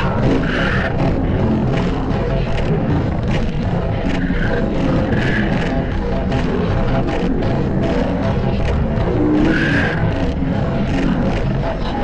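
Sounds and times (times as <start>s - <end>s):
distorted audio effects: 0.0s - 12.0s
music: 0.0s - 12.0s.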